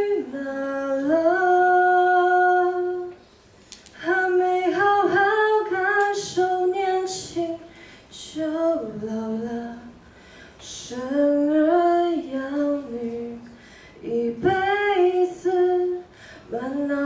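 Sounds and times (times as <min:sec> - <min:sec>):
girl singing into a microphone: 0:00.0 - 0:17.0.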